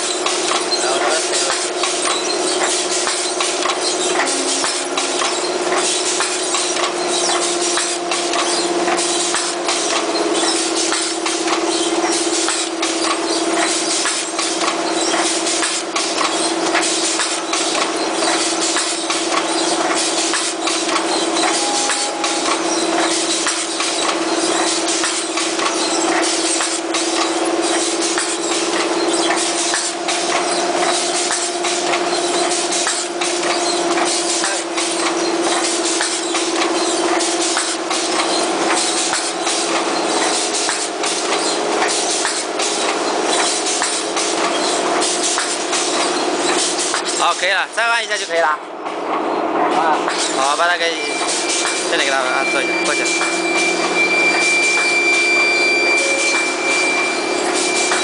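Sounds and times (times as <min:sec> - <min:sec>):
machine clicking and clatter: 0:00.0 - 0:52.2, 0:56.2 - 0:58.0
machine motor hum: 0:00.0 - 0:58.0.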